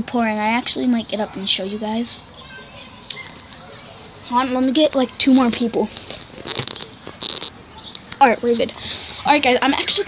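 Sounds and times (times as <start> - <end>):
phone handling rustle: 5.1 - 8.6.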